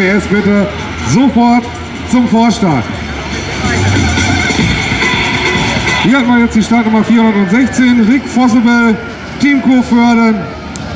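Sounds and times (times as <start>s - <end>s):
tractor diesel engine under load: 0.0s - 10.9s.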